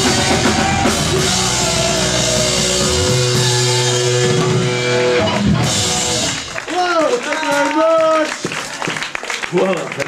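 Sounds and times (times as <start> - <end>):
rock band final chord: 0.0 - 6.6.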